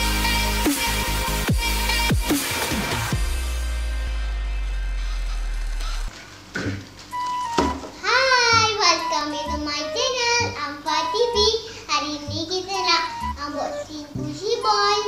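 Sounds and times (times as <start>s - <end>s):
deep electronic music tone: 0.0s - 6.1s, 12.3s - 14.6s
light background music: 0.0s - 15.0s
boy talking: 8.0s - 15.0s.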